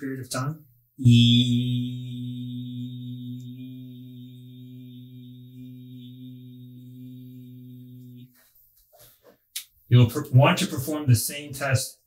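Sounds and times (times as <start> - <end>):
man holding long vowel: 1.0 - 8.3.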